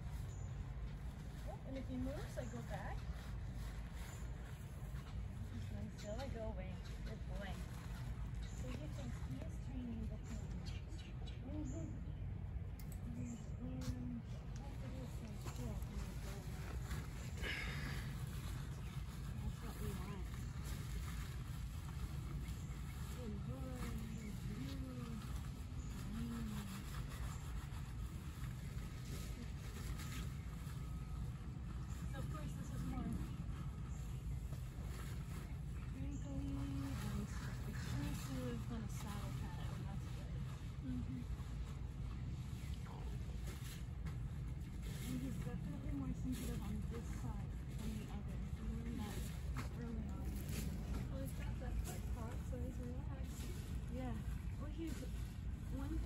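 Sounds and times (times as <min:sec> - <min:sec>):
steady low rumble: 0:00.0 - 0:56.0
soft voice murmuring: 0:23.2 - 0:27.5.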